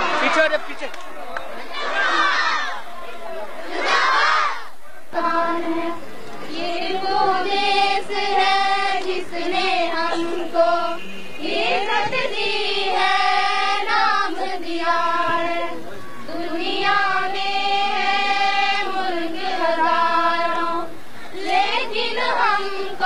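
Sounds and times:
girls choir singing: 1.6s - 2.8s, 3.5s - 23.0s.

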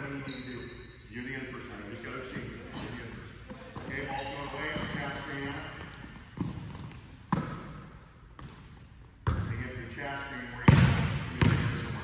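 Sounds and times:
sneaker squeaks: 0.0s - 1.1s, 2.7s - 8.8s
basketball bouncing on wooden floor: 6.2s - 7.8s, 8.4s - 9.5s, 10.7s - 11.7s.

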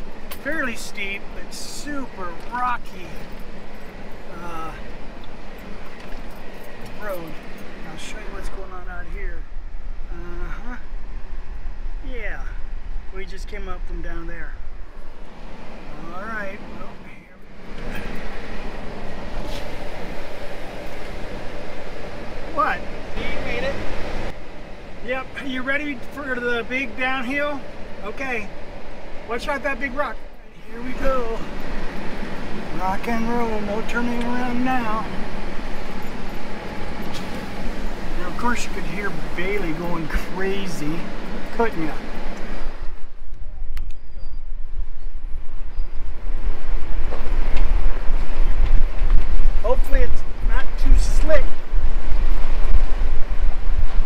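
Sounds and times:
engine and road rumble: 0.0s - 54.0s
sharp click: 43.7s - 44.0s.

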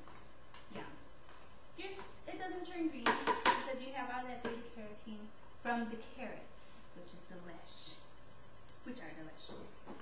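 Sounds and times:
woman's voice: 1.8s - 8.0s, 8.8s - 9.8s
knocks on blender jar: 3.0s - 3.7s.

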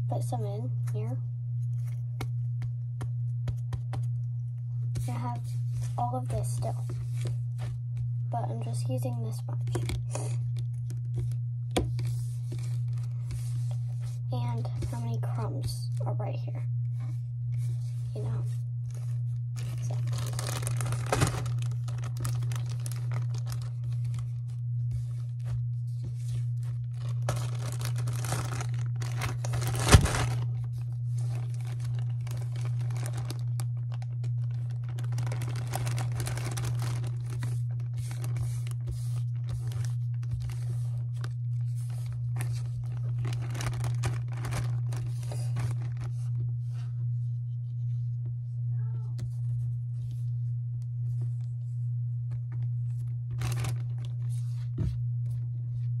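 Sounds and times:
steady low hum: 0.0s - 56.0s
plastic bag crinkling: 8.6s - 16.1s, 18.0s - 46.6s, 52.9s - 54.8s.

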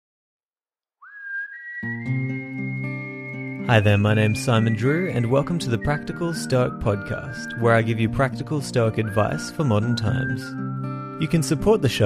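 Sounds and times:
whistled melody: 1.0s - 12.0s
guitar chords: 1.8s - 12.0s.

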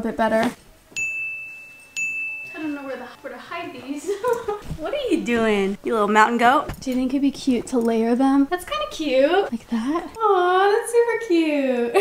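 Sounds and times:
bell-like chime: 1.0s - 3.2s.

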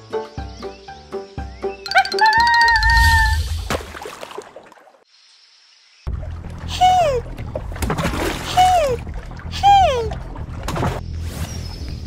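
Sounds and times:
short high falling cry: 1.9s - 3.5s
cartoon water splashing: 1.9s - 4.9s.

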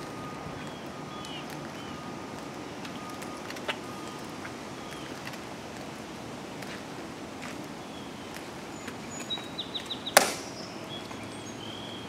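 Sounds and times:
steady outdoor hum: 0.0s - 12.0s.

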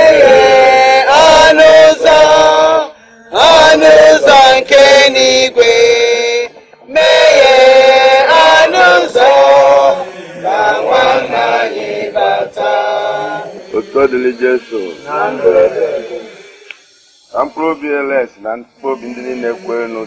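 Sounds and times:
person chanting a lament: 0.0s - 16.6s.

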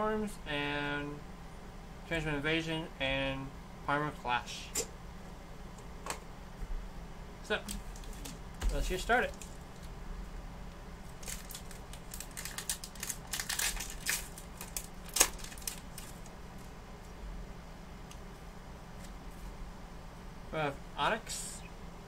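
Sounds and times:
foil wrapper crinkling and tearing: 11.1s - 16.3s.

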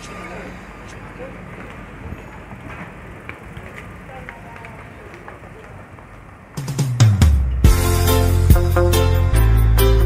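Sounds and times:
faint chatter of passers-by: 0.0s - 7.7s
urban background noise: 0.0s - 10.0s.

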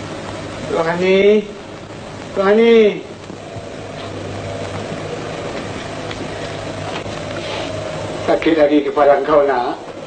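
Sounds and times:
film soundtrack hum and hiss: 0.0s - 10.0s.

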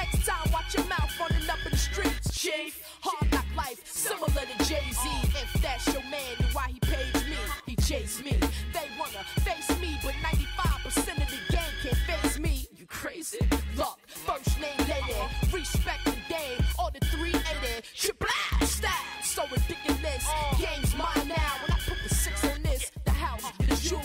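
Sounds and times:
deep kick and bass line: 0.0s - 2.4s, 3.2s - 3.7s, 4.3s - 8.8s, 9.4s - 12.6s, 13.4s - 13.9s, 14.5s - 17.8s, 18.5s - 19.0s, 19.6s - 24.0s
rapping over a drum beat: 0.0s - 24.0s.

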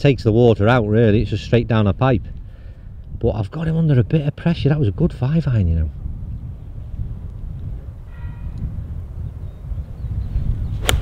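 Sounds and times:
wind rumbling on microphone: 0.0s - 11.0s
golf club striking ball: 10.8s - 11.0s.

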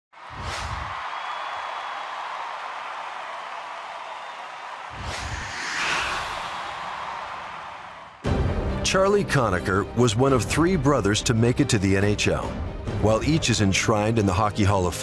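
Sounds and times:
deep boom with whoosh: 4.9s - 7.0s
rising swoosh: 4.9s - 8.0s
steady airy wash: 5.0s - 7.0s.

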